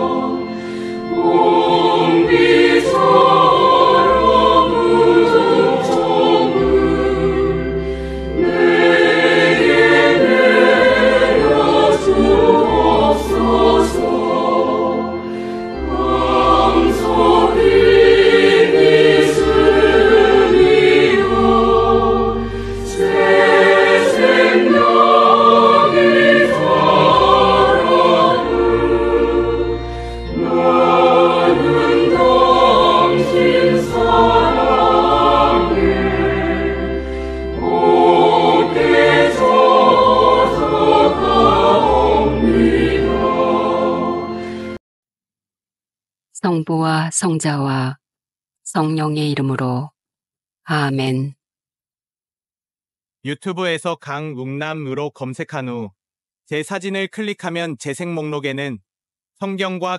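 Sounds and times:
choir singing a hymn: 0.0s - 44.8s
instrumental accompaniment: 0.0s - 44.8s.

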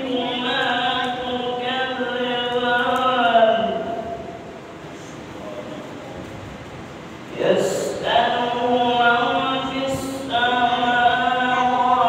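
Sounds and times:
man chanting melodically: 0.0s - 4.4s, 7.3s - 12.0s.

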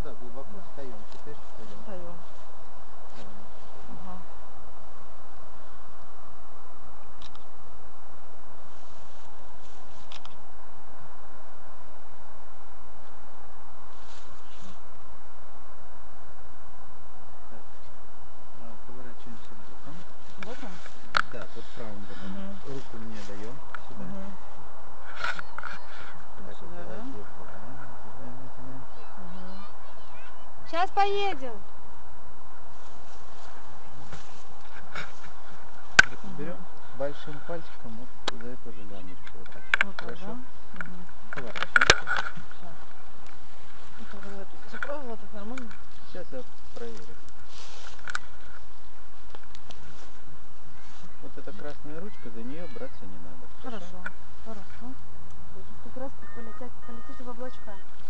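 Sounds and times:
harness straps rustling: 32.8s - 37.9s, 39.2s - 51.8s.

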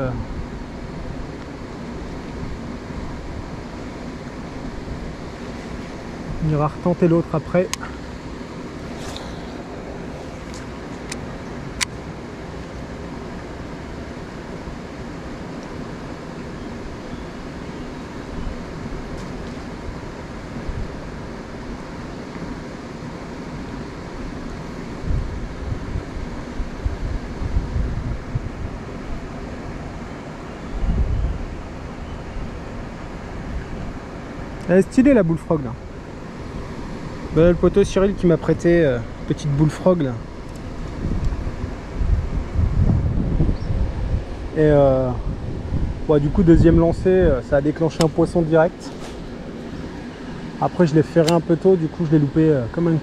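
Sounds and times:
flowing river water: 0.0s - 53.0s
wind: 0.0s - 53.0s
wind buffeting microphone: 25.0s - 30.0s, 30.7s - 34.2s, 36.4s - 51.6s
sharp clicks: 51.2s - 51.4s.

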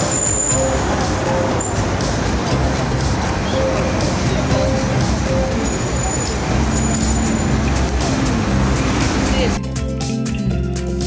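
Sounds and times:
rush of passing road vehicles: 0.0s - 9.6s.

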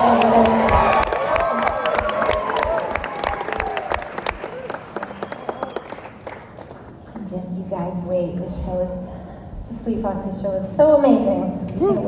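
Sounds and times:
audience applauding and cheering: 0.0s - 7.1s.

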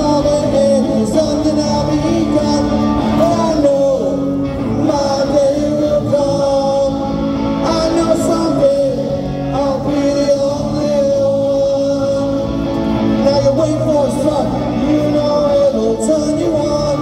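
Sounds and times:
man singing punk rock: 0.0s - 17.0s.

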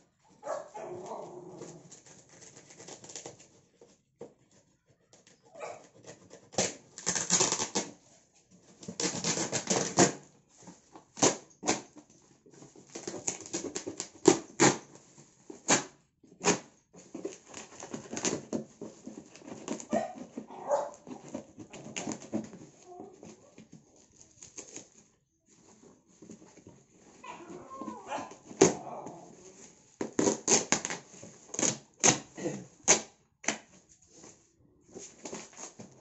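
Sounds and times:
plastic wrap crinkling and tearing: 0.6s - 3.6s, 6.5s - 8.1s, 8.7s - 12.0s, 12.6s - 34.4s.

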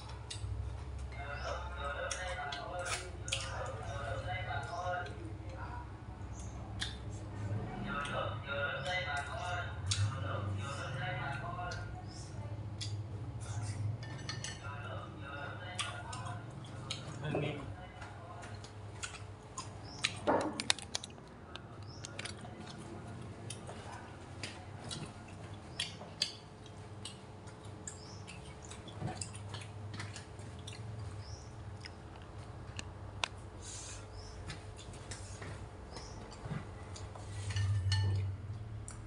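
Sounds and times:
faint voices: 1.0s - 26.2s
clicks and knocks of handling: 20.1s - 22.4s.

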